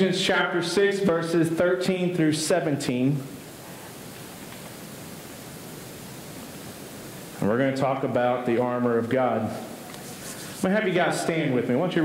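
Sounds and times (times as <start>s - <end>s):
steady hiss of recording noise: 0.0s - 12.0s.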